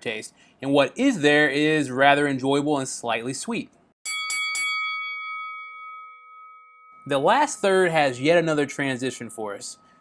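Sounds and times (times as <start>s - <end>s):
boxing ring bell: 4.0s - 10.0s.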